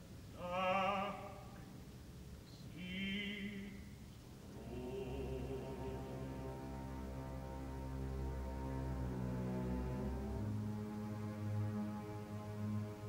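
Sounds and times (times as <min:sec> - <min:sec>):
opera singer with vibrato: 0:00.3 - 0:01.6, 0:04.5 - 0:07.2
orchestra playing: 0:04.5 - 0:13.0.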